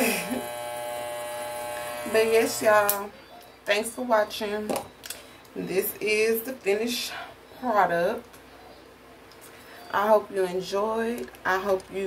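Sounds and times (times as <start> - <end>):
electric buzz: 0.0 - 3.0.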